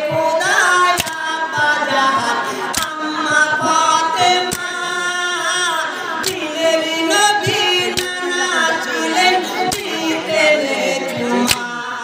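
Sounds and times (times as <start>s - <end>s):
group of men singing: 0.0s - 12.0s
sharp beat: 2.8s - 5.3s.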